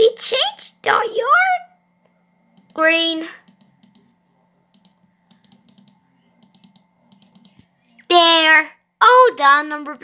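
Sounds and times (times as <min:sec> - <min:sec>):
computer keyboard keys clicking: 0:03.4 - 0:04.1, 0:04.7 - 0:07.6.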